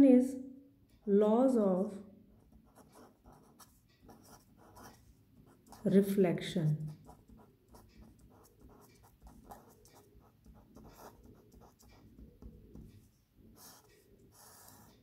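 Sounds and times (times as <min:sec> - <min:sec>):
marker writing on paper: 0:02.4 - 0:06.0, 0:06.8 - 0:15.0.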